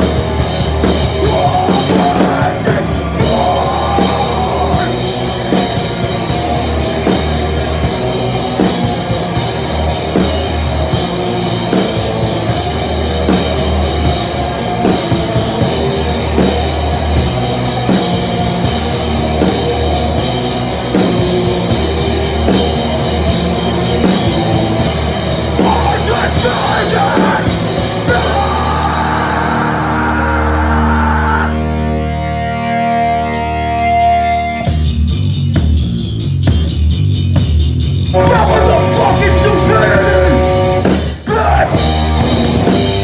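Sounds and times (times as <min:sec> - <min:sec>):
drum kit with loud cymbals: 0:00.0 - 0:31.5, 0:32.9 - 0:43.0
bass guitar: 0:00.0 - 0:43.0
distorted electric guitars: 0:00.0 - 0:43.0.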